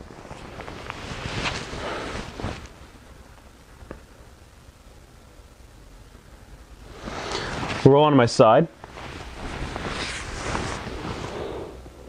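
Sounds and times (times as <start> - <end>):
fabric rustling: 0.0 - 4.3, 6.8 - 12.0.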